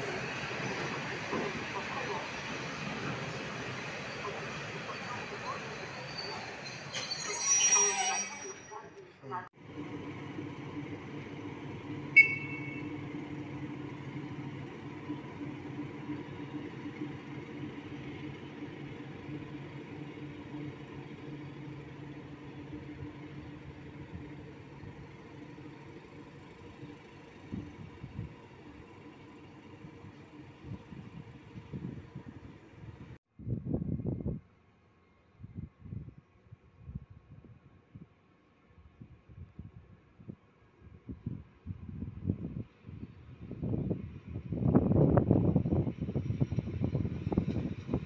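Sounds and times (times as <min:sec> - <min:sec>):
diesel locomotive engine running: 0:00.0 - 0:06.7, 0:09.6 - 0:33.2, 0:42.8 - 0:48.0
sharp high squeak: 0:04.1 - 0:09.0.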